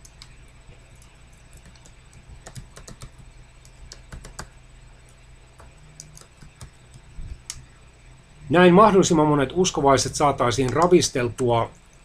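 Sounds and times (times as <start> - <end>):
computer keyboard typing: 0.0 - 7.1
faint low hum: 0.0 - 12.0.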